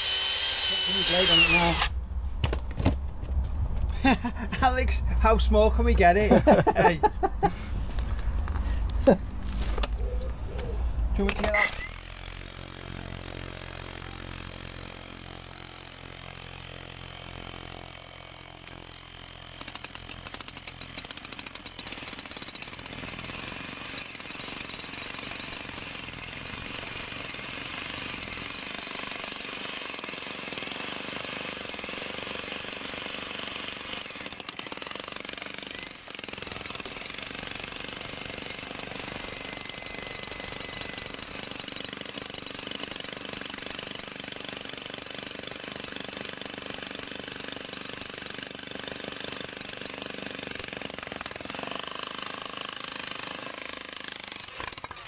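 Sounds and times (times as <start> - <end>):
rotary hammer chiseling concrete: 0.0 - 1.9, 11.4 - 55.0.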